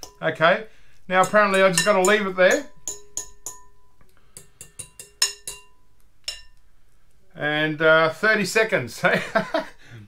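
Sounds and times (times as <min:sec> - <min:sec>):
fork clinking against glass bowl: 0:01.2 - 0:06.6.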